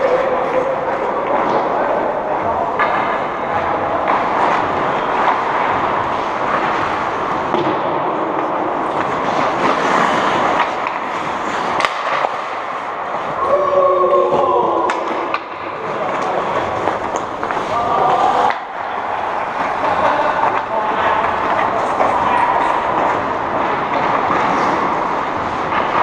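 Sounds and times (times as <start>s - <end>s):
hockey sticks and puck clacking: 0.0s - 26.0s
skates scraping on ice: 0.0s - 26.0s.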